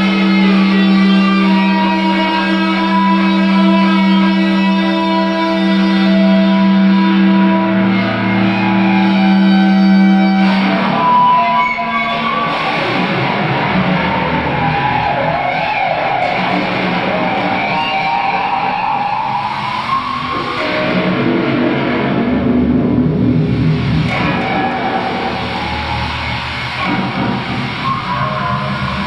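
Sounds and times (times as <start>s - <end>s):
rock music with electric guitar: 0.0s - 29.0s.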